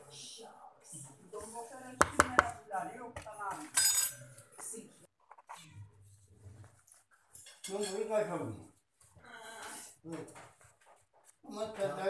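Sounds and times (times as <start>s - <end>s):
metal spoon tapping plastic bowl: 2.0s - 2.6s.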